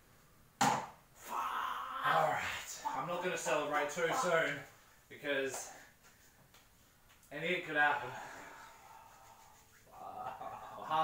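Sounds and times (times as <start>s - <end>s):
man groaning: 1.2s - 2.8s, 9.9s - 11.0s.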